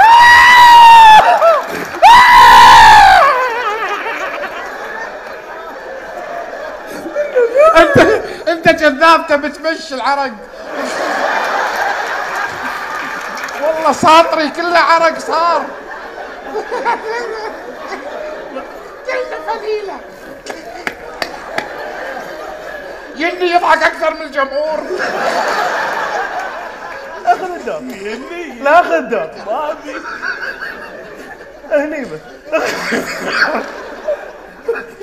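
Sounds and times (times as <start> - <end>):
men chattering and laughing: 3.2 - 35.0.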